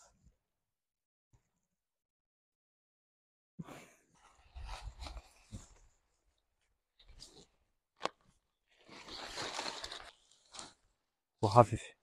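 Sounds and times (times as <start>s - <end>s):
fabric rustling: 8.7s - 10.9s.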